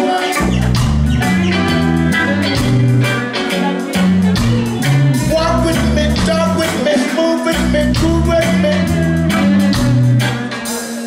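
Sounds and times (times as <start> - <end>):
bass line: 0.0 - 11.0
drums: 0.0 - 11.0
electric guitar: 0.0 - 11.0
reggae band playing: 0.0 - 11.0.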